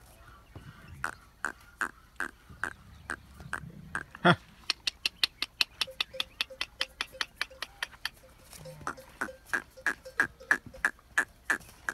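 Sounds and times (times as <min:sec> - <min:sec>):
camel neck bells clanking: 0:05.8 - 0:11.2.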